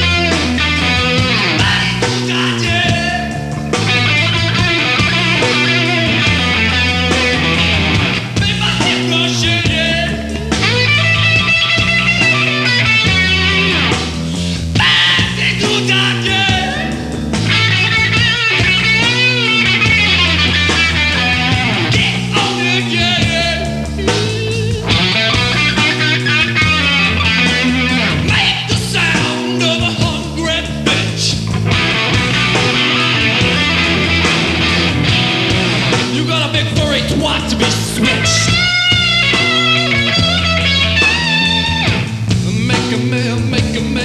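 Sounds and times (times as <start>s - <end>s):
bass: 0.0s - 44.0s
drums: 0.0s - 44.0s
electric guitar: 0.0s - 44.0s.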